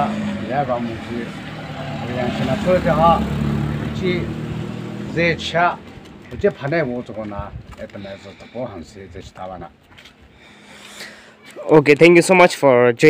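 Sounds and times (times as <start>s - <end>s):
man talking: 0.0s - 1.4s, 2.0s - 4.4s, 5.0s - 9.8s, 11.5s - 13.0s
vehicle engine humming: 0.0s - 10.7s.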